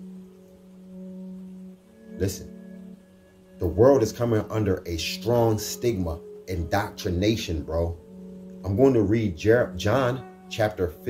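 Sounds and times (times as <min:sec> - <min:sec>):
background music steady note: 0:00.0 - 0:11.0.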